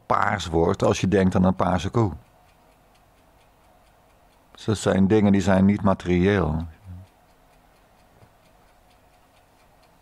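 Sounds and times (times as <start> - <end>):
faint regular ticking: 0.0 - 10.0
man speaking: 0.1 - 2.2, 4.6 - 7.1.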